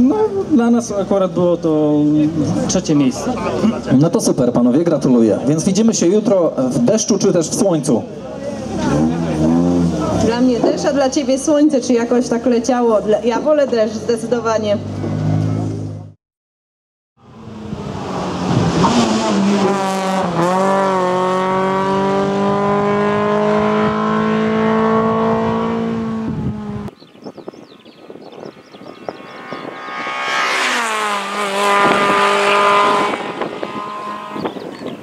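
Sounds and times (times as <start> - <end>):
rally car engine revving: 0.0 - 13.3, 17.2 - 26.9, 28.8 - 35.0
car passing with gear changes: 13.5 - 16.1, 17.3 - 27.0, 27.7 - 35.0.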